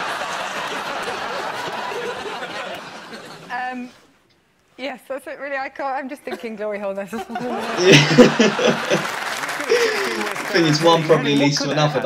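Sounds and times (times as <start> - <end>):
audience applauding: 0.0 - 3.3, 7.5 - 12.0
studio audience laughing: 0.0 - 3.5, 7.1 - 12.0
person laughing: 7.2 - 12.0.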